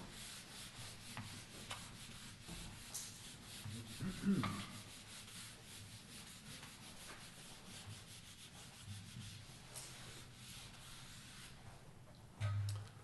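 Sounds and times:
whiteboard eraser scrubbing: 0.1 - 11.6.

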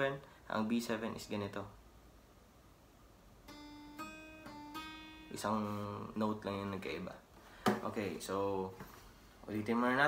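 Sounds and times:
acoustic guitar notes plucked: 3.4 - 6.8.

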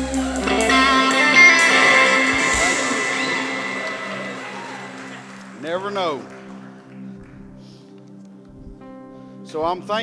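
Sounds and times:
electric guitars ringing: 0.0 - 7.6
held low note: 0.4 - 6.8.

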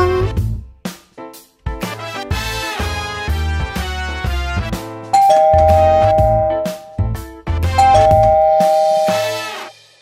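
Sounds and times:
background music: 0.0 - 10.0
two-tone doorbell chime: 5.2 - 7.0, 7.8 - 9.4.

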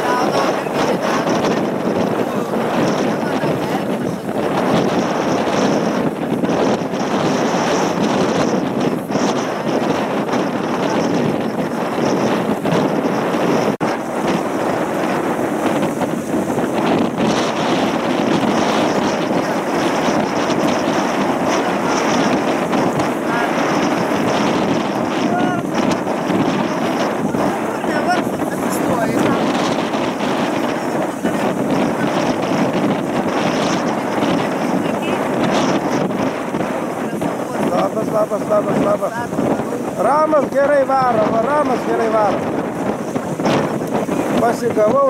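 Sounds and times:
choppy lake water: 0.0 - 45.0
strong wind on microphone: 0.0 - 45.0.

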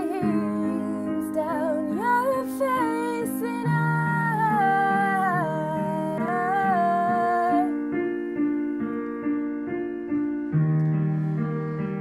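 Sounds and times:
woman singing wordless vowels: 0.0 - 7.8.

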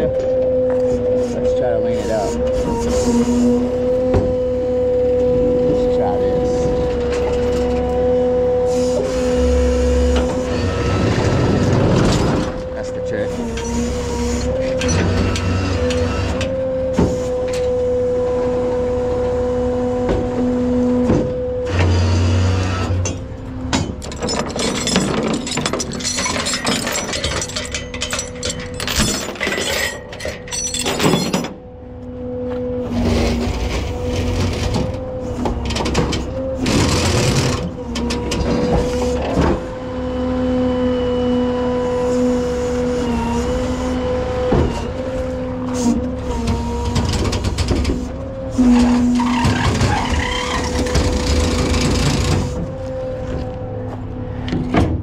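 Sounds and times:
tow truck whine: 0.0 - 55.0
chains clanking on steel deck: 23.9 - 31.6.

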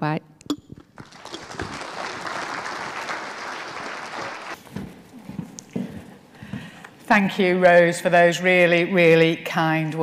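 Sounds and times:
audience applauding: 1.0 - 4.6.

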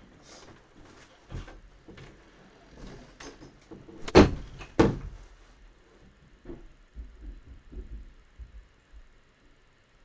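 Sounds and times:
loud knocks: 4.0 - 5.2, 6.4 - 8.6
faint knocks: 6.4 - 8.8.

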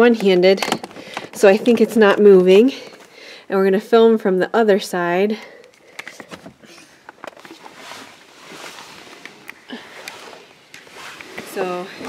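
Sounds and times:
camera handling rustling and clicks: 5.6 - 7.8, 8.6 - 11.5.

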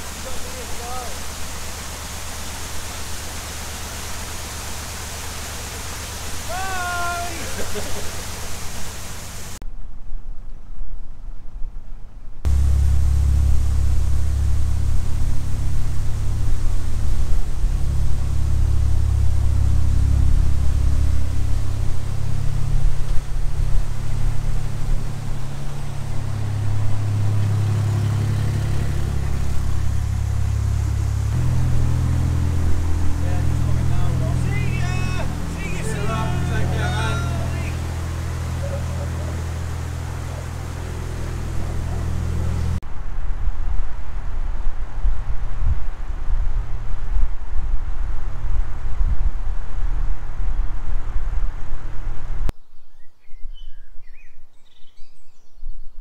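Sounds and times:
boat diesel engine running: 0.0 - 6.6, 12.5 - 42.8.

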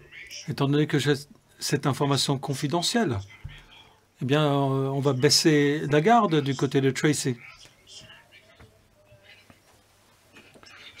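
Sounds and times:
faint man's voice: 0.0 - 9.4.

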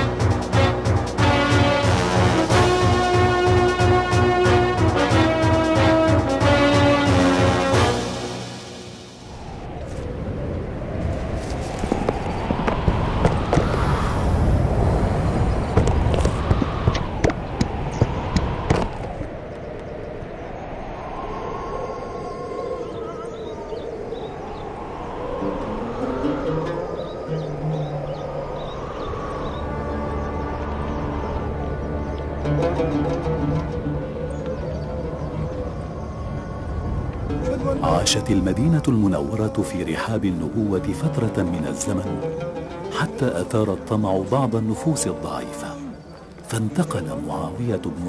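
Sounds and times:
soundtrack music with held notes: 0.0 - 9.3, 29.0 - 38.2, 40.0 - 48.0.

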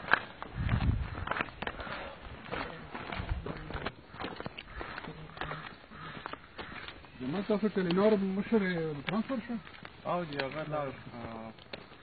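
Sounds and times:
footsteps on outdoor path: 0.0 - 12.0.

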